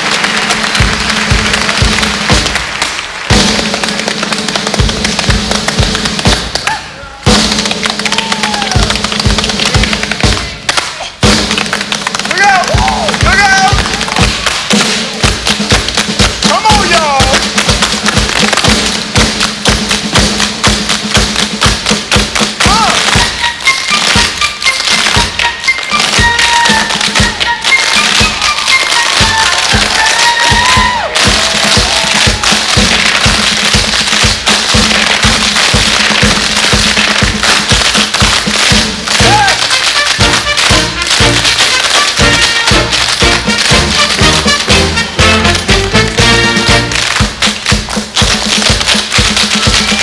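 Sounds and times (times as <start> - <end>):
band music: 0.0 - 50.0
tap shoes striking stage: 0.0 - 50.0.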